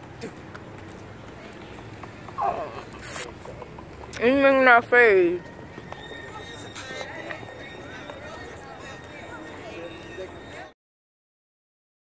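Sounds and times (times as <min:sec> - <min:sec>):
distant people chattering: 0:00.0 - 0:10.8
faint steady high tone: 0:05.2 - 0:10.8.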